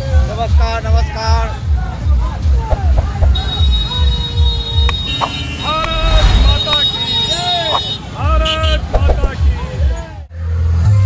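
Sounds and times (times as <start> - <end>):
low hum: 5.8 - 6.7.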